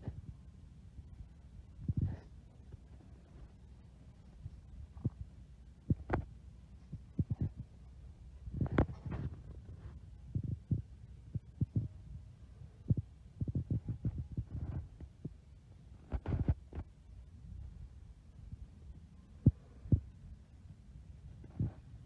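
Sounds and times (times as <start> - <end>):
low steady hum: 0.0 - 22.0
phone handling thumps and rubs: 8.6 - 10.5, 16.0 - 16.9.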